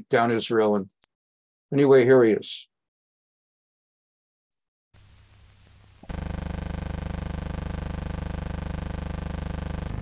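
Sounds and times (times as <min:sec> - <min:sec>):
loud steady buzzing hum: 0:06.0 - 0:10.0.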